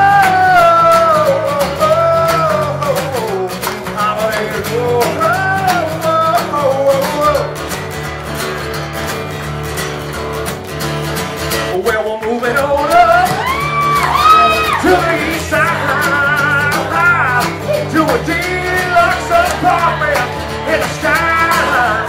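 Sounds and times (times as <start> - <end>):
person singing wordless melody: 0.0 - 7.5, 11.8 - 22.0
acoustic guitar strumming: 0.0 - 22.0.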